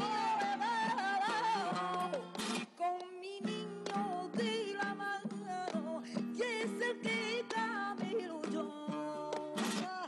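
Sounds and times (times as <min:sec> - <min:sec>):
acoustic guitar: 0:00.0 - 0:10.0
woman singing flamenco: 0:00.0 - 0:10.0.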